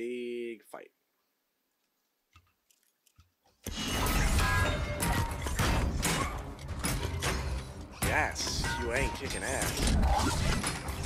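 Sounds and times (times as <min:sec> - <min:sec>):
music: 0:03.7 - 0:11.0
sharp hits and impacts: 0:03.7 - 0:11.0.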